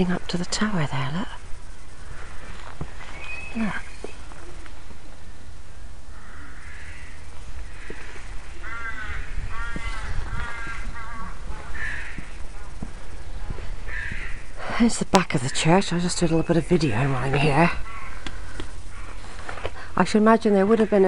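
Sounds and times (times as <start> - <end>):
crow cawing: 1.9 - 3.0, 6.1 - 14.6, 17.6 - 19.5.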